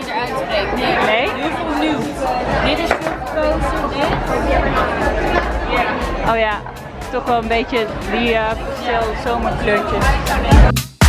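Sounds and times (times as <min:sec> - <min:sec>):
people talking at once: 0:00.0 - 0:10.8.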